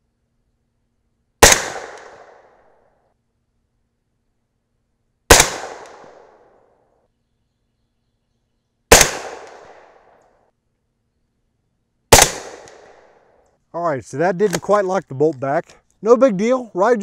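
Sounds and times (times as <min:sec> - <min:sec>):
suppressed rifle shots: 0:01.4 - 0:02.6, 0:05.3 - 0:06.6, 0:08.9 - 0:10.2, 0:12.1 - 0:13.2.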